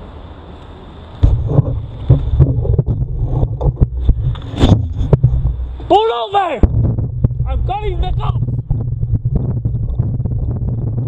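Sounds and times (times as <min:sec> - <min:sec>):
bicycle knocks and rattles: 0:01.2 - 0:05.9, 0:06.6 - 0:11.0
low rumble: 0:01.2 - 0:05.9, 0:06.6 - 0:11.0.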